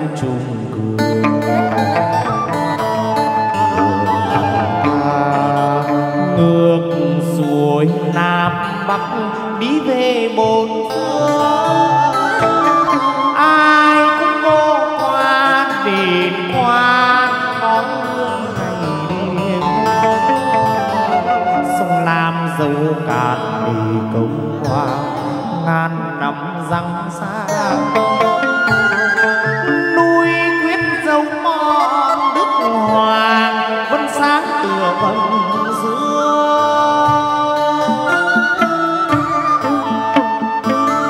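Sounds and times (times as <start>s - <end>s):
plucked lute: 0.0s - 26.2s, 27.1s - 41.0s
person singing long sliding notes: 0.0s - 26.3s, 27.2s - 41.0s
instrumental accompaniment: 0.2s - 25.9s, 27.2s - 41.0s.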